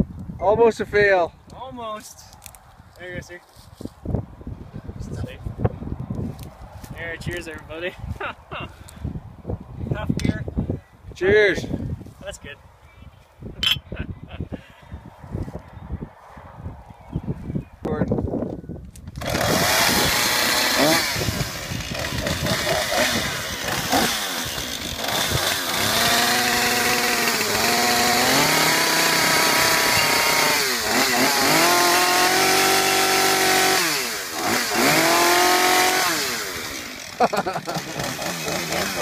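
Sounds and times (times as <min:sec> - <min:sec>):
chainsaw revving: 0:19.1 - 0:39.0.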